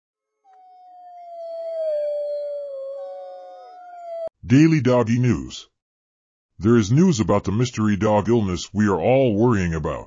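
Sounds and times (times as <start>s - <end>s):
dog howling: 0.5s - 4.3s.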